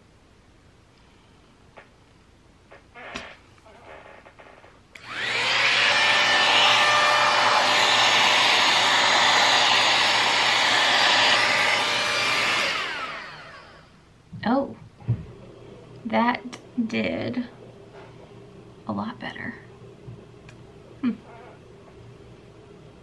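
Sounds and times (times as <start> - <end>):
hot-air styler motor whine: 4.0 - 14.0.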